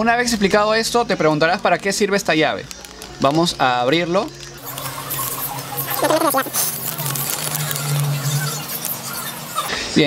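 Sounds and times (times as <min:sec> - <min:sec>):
plastic bag crinkling: 0:02.6 - 0:09.1.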